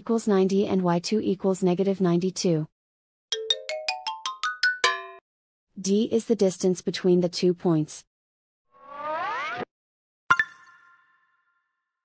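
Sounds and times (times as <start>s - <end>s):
electronic chime rising run: 8.8s - 9.7s.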